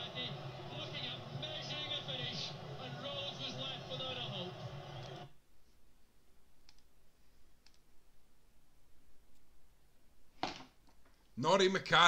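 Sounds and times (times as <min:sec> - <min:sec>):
voices: 0:00.0 - 0:05.3
faint clicks: 0:06.6 - 0:06.9, 0:07.6 - 0:07.9.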